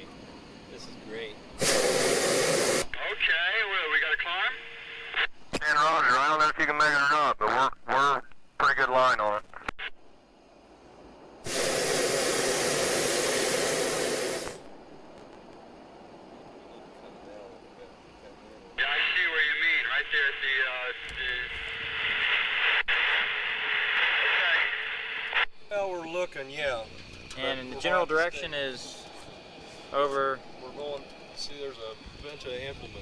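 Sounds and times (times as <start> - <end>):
propane burner blast: 1.5 - 3.0, 11.4 - 14.7
voice over two-way radio: 2.9 - 9.9, 16.7 - 24.9.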